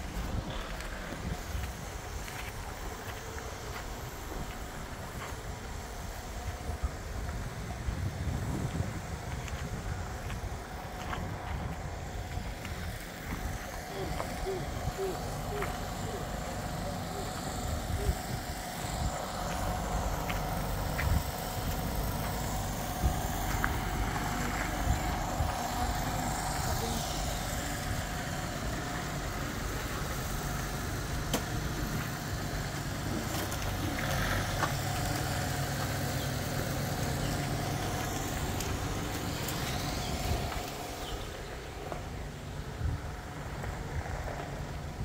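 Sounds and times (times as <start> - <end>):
machine humming: 0.0 - 45.0.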